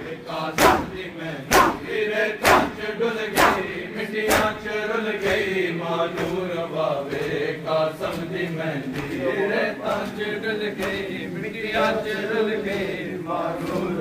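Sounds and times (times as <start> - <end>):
men chanting: 0.0 - 14.0
chest-beating slaps: 0.5 - 4.6.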